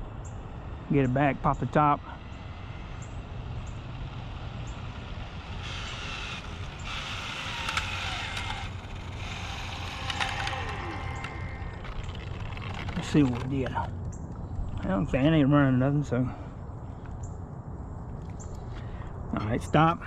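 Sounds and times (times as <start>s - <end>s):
toy car motor whine: 0.9s - 13.8s.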